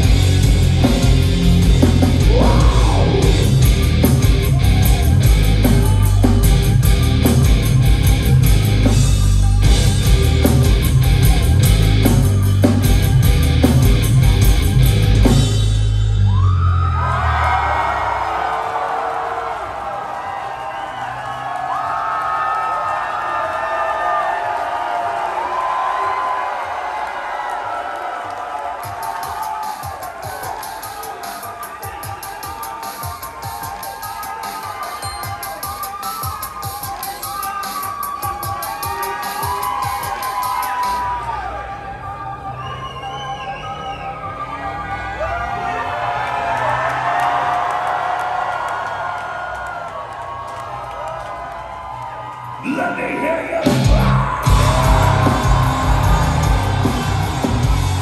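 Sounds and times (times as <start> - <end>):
crowd cheering and shouting: 0.0 - 58.0.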